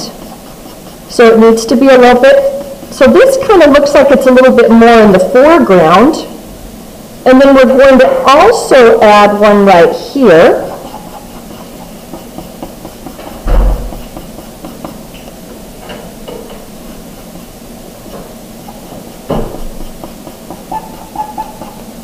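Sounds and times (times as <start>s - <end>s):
pencil scratching on paper: 0.0s - 4.6s, 9.7s - 15.6s, 16.5s - 17.8s, 18.5s - 22.0s
dull thump: 13.2s - 14.2s.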